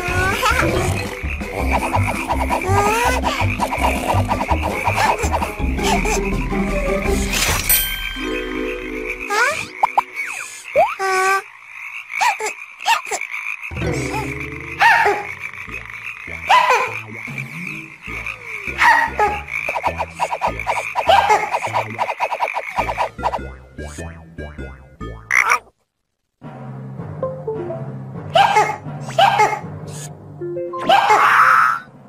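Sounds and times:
cartoon frogs croaking: 0.0s - 7.4s, 8.2s - 26.1s
music score: 26.4s - 28.3s.

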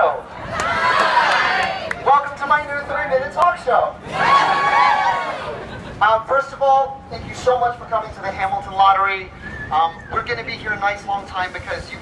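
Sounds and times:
crowd cheering and shouting: 0.4s - 2.0s, 4.0s - 5.7s.

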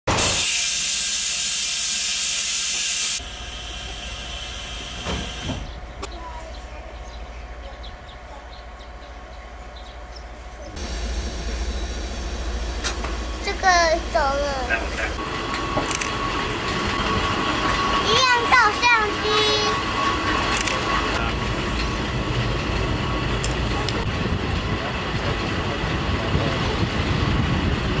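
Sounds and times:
air brakes hissing: 0.1s - 5.8s
low train rumble: 0.1s - 28.0s
child's voice: 6.0s - 8.7s, 13.4s - 15.0s, 18.0s - 19.8s.

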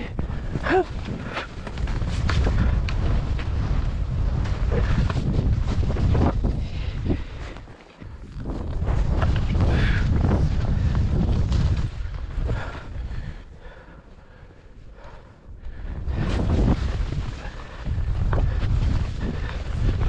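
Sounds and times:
wind buffeting microphone: 0.0s - 20.0s
person gasping: 0.1s - 1.5s
skis scraping on snow: 16.1s - 20.0s.

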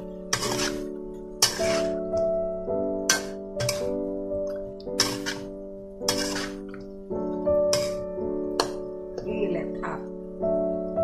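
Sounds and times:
keyboard music with sustained chords: 0.0s - 11.0s
metal spatula scraping a wok: 0.2s - 2.1s, 3.0s - 4.0s, 5.0s - 6.8s, 7.7s - 8.7s.

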